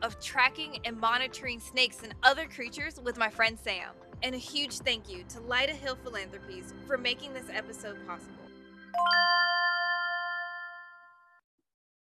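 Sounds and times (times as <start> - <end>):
bell-like logo chime: 8.9 - 11.4.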